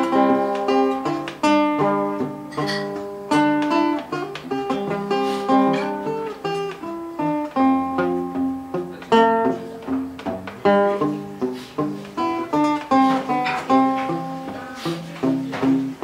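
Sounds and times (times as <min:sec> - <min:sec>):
fingerstyle acoustic guitar: 0:00.0 - 0:16.0.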